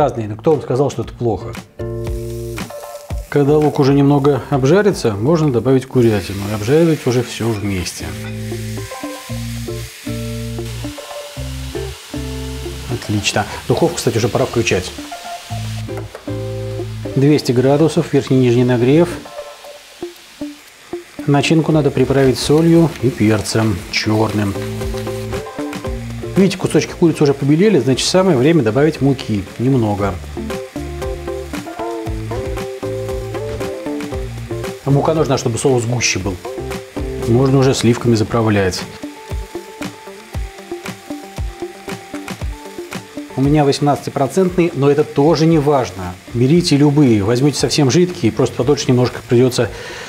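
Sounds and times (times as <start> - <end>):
background music with held chords: 0.0 - 50.0
chicken sizzling in a frying pan: 2.0 - 50.0.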